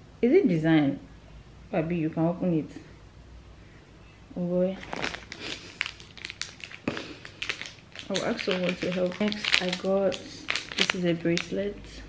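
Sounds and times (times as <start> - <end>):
plastic packaging crinkling: 4.8 - 11.6.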